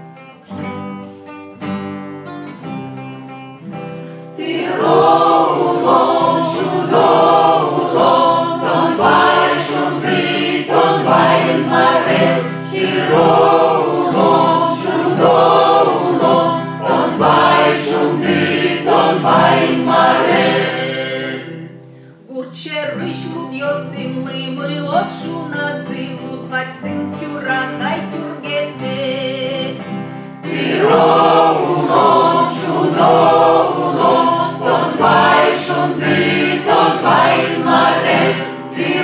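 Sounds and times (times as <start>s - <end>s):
acoustic guitar chords: 0.0s - 39.0s
choir singing: 4.4s - 21.9s, 30.4s - 39.0s.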